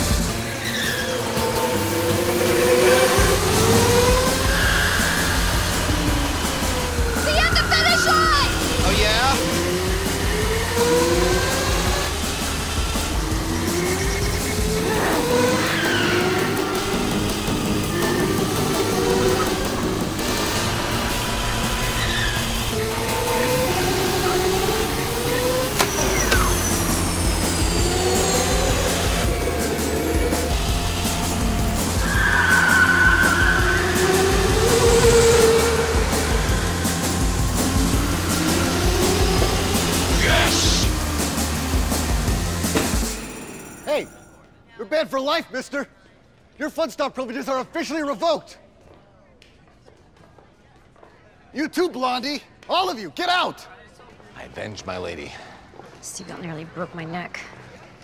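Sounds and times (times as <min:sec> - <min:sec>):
go-kart motors revving: 0:00.0 - 0:43.5
background music: 0:00.0 - 0:45.9.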